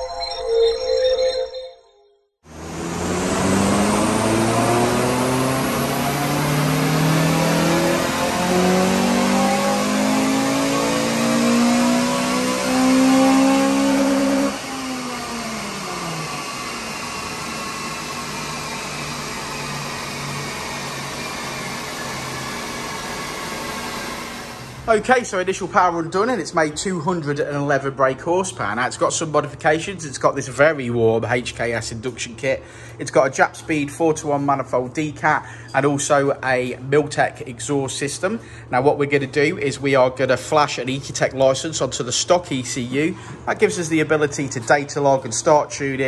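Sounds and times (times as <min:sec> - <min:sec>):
car engine revving at full throttle: 0:02.5 - 0:24.9.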